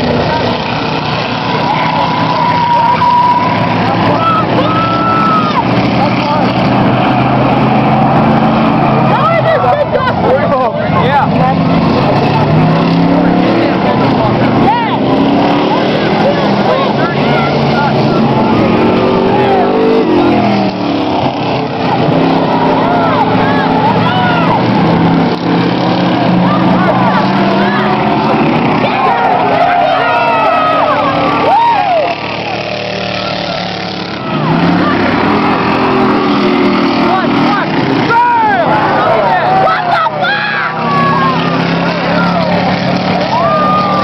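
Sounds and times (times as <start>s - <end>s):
truck engines revving: 0.0s - 44.0s.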